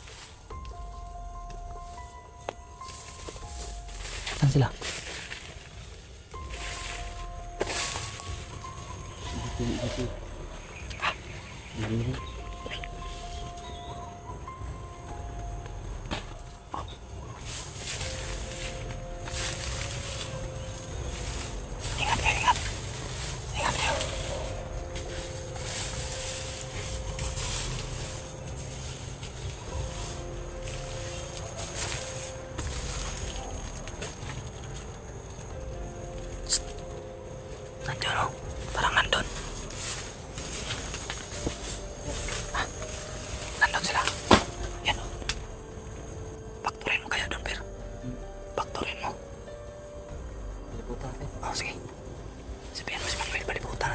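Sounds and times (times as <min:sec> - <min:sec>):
dry leaves crackling: 0:00.0 - 0:53.9
faint background music: 0:00.0 - 0:53.9.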